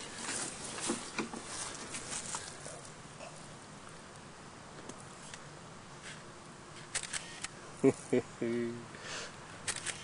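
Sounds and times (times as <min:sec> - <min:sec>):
rustling and handling noise: 0:00.0 - 0:03.0
faint hiss: 0:00.0 - 0:10.0.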